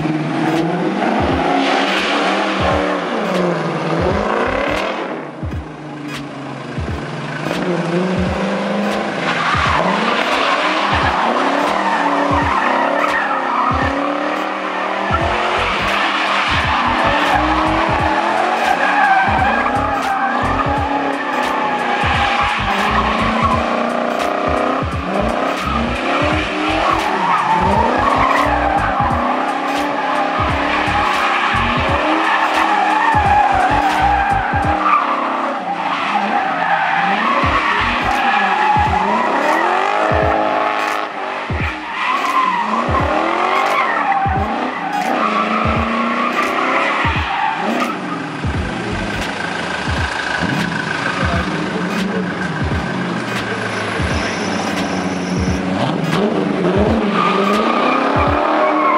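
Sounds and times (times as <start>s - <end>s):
car engine revving: 0.0s - 58.9s
tyres squealing: 6.9s - 58.9s.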